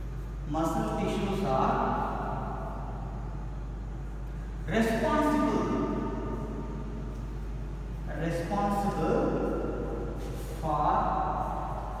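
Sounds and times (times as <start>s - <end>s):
low electrical hum: 0.0s - 12.0s
man speaking slowly: 0.4s - 3.0s, 4.6s - 7.0s, 8.0s - 12.0s.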